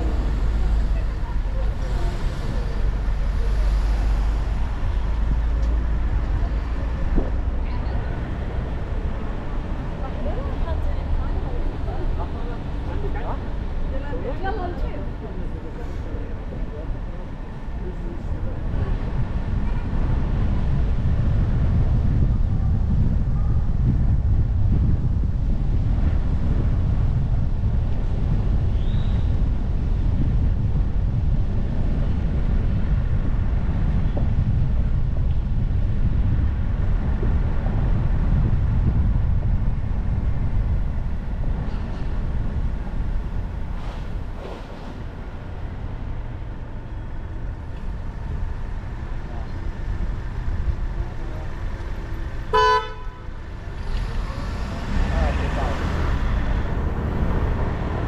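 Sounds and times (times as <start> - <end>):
car road and wind rumble: 0.0 - 58.0
car horn toot: 52.5 - 53.3.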